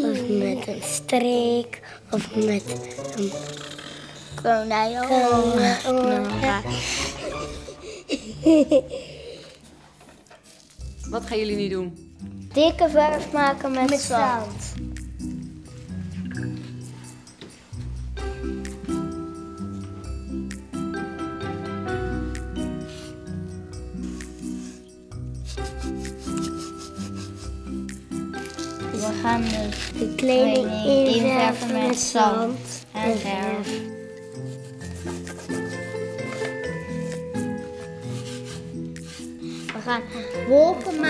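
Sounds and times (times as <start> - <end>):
background music: 0.0 - 41.0
children giggling: 7.2 - 9.4, 25.5 - 27.6
paintbrush scraping on board: 25.5 - 27.7, 32.9 - 40.3.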